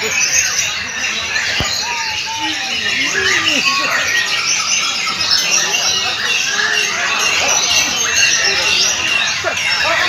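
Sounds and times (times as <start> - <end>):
songbirds singing: 0.0 - 10.0.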